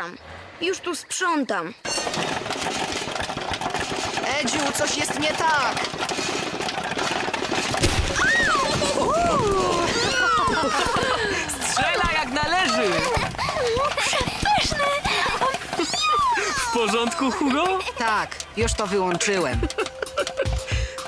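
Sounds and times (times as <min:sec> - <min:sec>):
cartoon voices exclaiming: 0:15.8 - 0:17.4
background music: 0:16.8 - 0:21.0.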